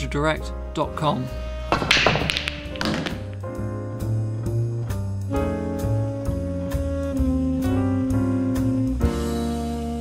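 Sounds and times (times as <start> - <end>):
jazz background music: 0.0 - 10.0
pool balls clacking: 1.7 - 3.4.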